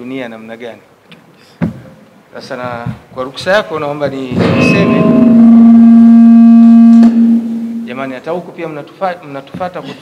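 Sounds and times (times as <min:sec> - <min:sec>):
microphone feedback howl: 0:04.4 - 0:08.3.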